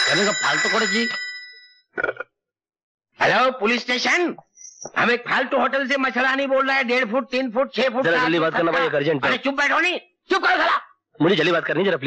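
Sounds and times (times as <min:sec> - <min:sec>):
telephone bell ringing: 0:00.0 - 0:01.9.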